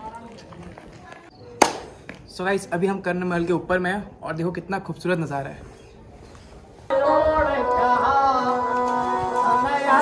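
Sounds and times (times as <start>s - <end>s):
faint open-air background: 0.0s - 10.0s
sharp hand clap: 1.6s - 1.9s.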